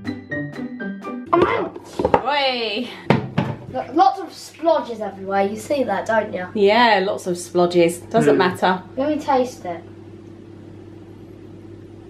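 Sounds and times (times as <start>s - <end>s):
sharp knocks: 3.1s - 3.8s.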